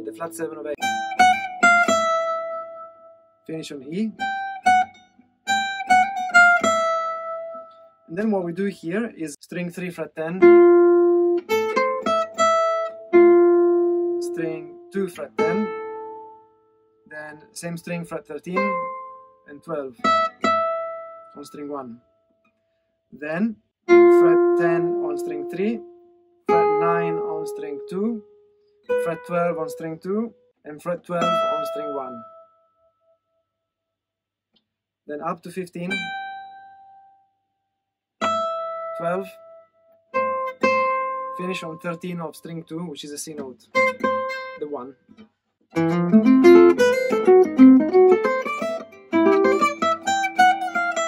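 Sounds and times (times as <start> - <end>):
jazz guitar picking notes: 0.0 - 3.1, 5.5 - 8.6, 10.4 - 16.4, 18.6 - 19.2, 20.0 - 21.3, 23.9 - 28.2, 28.9 - 30.0, 31.2 - 32.4, 38.2 - 39.6, 40.2 - 41.7, 43.7 - 44.7, 45.8 - 51.0
single guitar note: 14.2 - 15.8.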